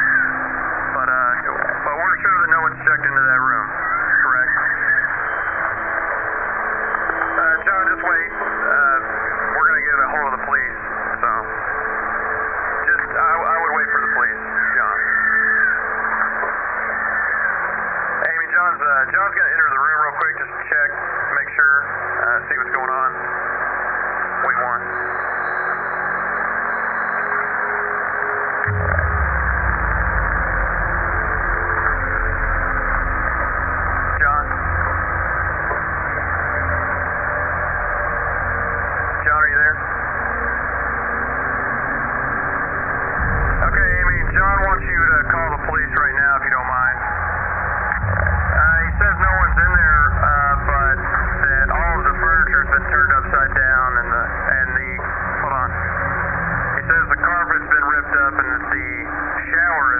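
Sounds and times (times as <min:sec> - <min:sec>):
walkie-talkie voices: 0:00.0 - 0:06.1, 0:06.9 - 0:11.5, 0:12.8 - 0:16.7, 0:18.2 - 0:23.2, 0:24.4 - 0:25.0, 0:34.1 - 0:34.6, 0:39.2 - 0:39.9, 0:43.6 - 0:47.1, 0:48.6 - 0:55.8, 0:56.8 - 0:59.9
radio static: 0:00.0 - 0:25.0, 0:28.6 - 0:40.8, 0:42.7 - 0:59.9
low rumble: 0:28.7 - 0:40.9, 0:41.5 - 0:59.5.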